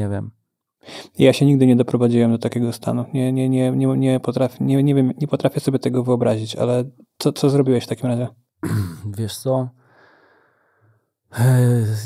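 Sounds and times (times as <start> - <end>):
man talking: 0.0 - 0.3, 1.0 - 9.7, 11.3 - 12.0.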